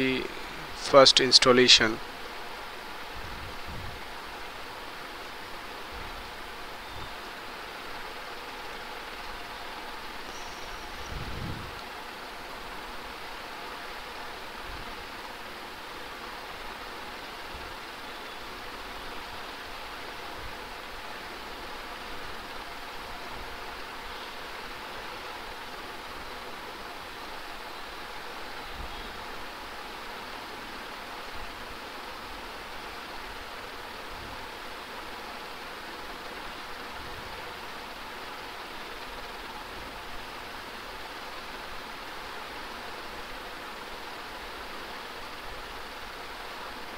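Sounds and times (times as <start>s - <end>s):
microphone hiss: 0.0s - 46.9s.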